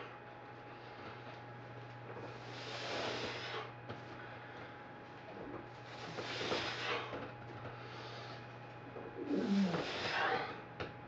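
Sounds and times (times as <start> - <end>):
low steady hum: 0.0 - 11.0
man breathing hard: 5.8 - 8.5, 9.2 - 10.7.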